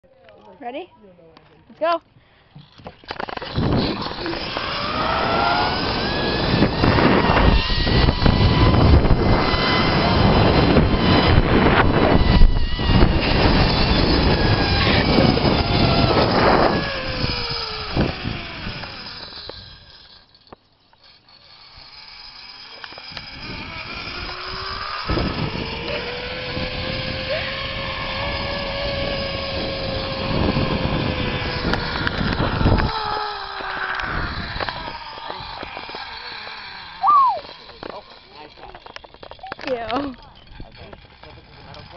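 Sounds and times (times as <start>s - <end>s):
zip-line pulleys whining on cable: 2.5s - 41.9s
wind buffeting on microphone: 3.1s - 19.9s, 23.1s - 41.9s.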